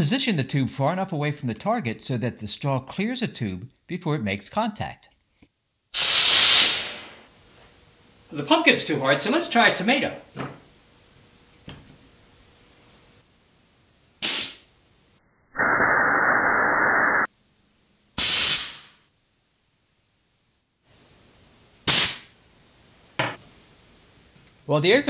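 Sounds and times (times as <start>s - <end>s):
compressed air hissing: 6.0s - 7.0s, 14.2s - 14.6s, 18.2s - 19.0s, 21.9s - 22.3s
compressed air blasts: 6.0s - 7.3s, 14.2s - 14.7s, 18.2s - 19.0s, 21.8s - 22.3s.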